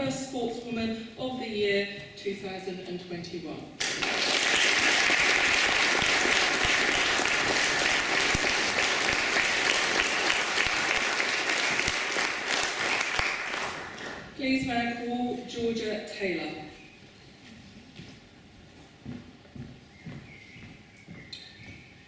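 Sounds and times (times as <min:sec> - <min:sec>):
audience applauding: 0:03.8 - 0:14.3.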